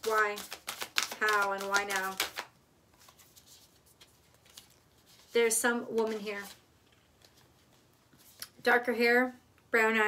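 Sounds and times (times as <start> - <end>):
cards being shuffled: 0.0 - 8.6.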